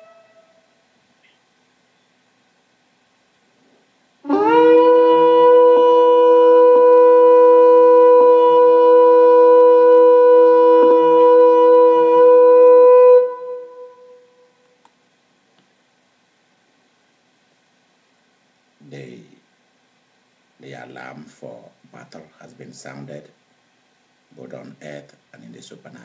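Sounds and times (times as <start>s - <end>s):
shofar long note: 0.0s - 0.8s, 4.2s - 14.6s.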